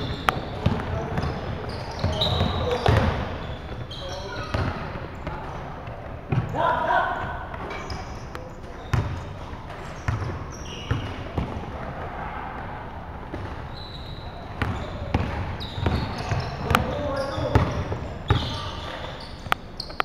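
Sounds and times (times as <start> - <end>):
basketball bouncing on hardwood floor: 0.0 - 3.8, 4.4 - 4.9, 14.6 - 18.5
sneaker squeaks: 0.0 - 11.8, 13.0 - 20.0
players calling out: 0.0 - 19.9.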